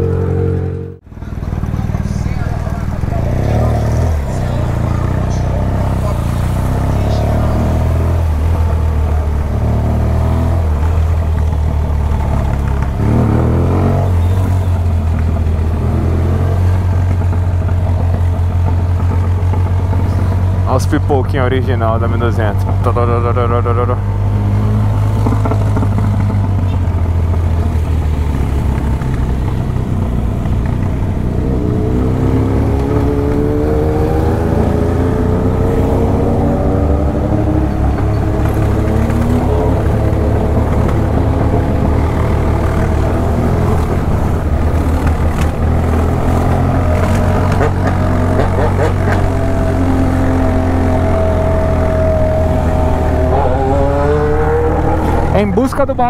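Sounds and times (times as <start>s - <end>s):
motorcycle engine rumbling: 0.0s - 56.0s.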